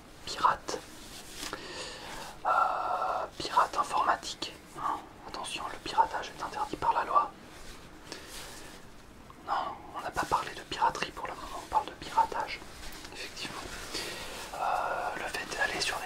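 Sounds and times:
man whispering: 0.2s - 0.9s, 2.3s - 7.4s, 9.4s - 16.0s.

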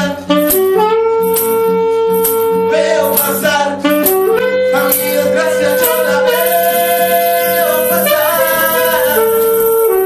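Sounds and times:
acoustic ska band playing: 0.0s - 10.0s
melody of long held notes: 0.2s - 10.0s.

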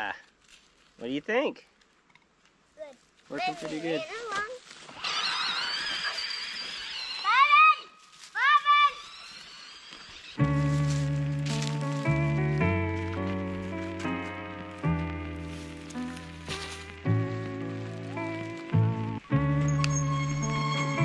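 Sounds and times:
voice whooping and squealing: 5.0s - 10.4s
background music with held chords: 10.4s - 21.0s.

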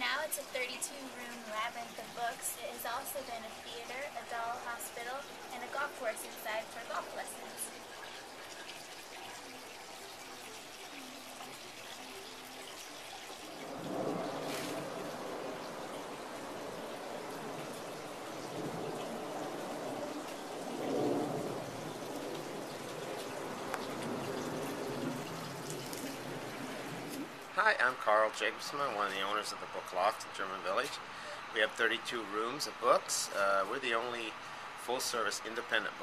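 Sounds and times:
steady outdoor hiss: 0.0s - 36.0s.

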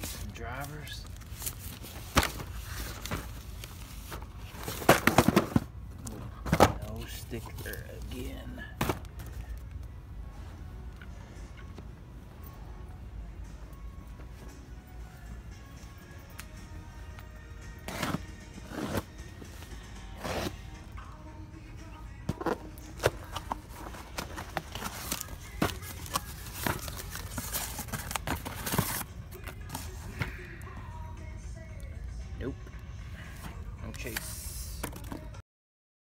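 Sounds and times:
cardboard crackling and scraping: 0.0s - 9.4s, 22.3s - 30.1s
store background music: 0.0s - 35.4s.

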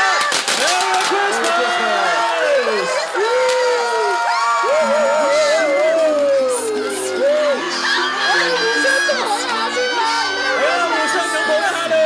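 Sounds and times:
crowd cheering and whooping: 0.0s - 12.0s
music: 4.6s - 12.0s.

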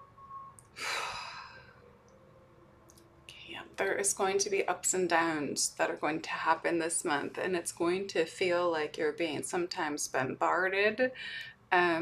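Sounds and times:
woman taking a deep breath: 0.8s - 1.8s.

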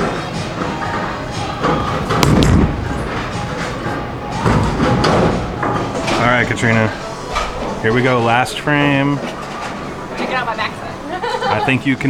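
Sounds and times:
background music: 0.0s - 12.0s
bowling thud and clatter: 0.6s - 6.2s
low rumble: 2.2s - 5.6s.

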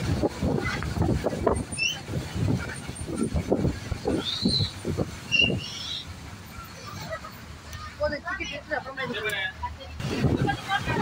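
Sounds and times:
bus rumbling on road: 0.0s - 11.0s.

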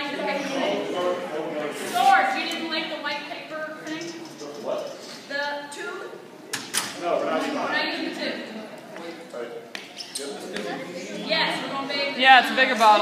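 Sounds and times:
voices talking: 0.0s - 13.0s.

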